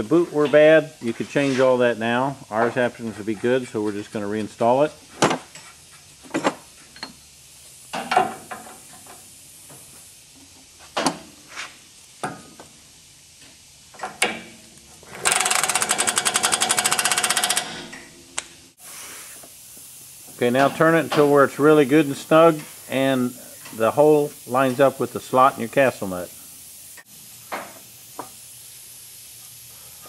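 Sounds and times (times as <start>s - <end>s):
pneumatic impact wrench hammering: 7.9s - 9.2s, 13.9s - 18.5s, 26.6s - 28.4s.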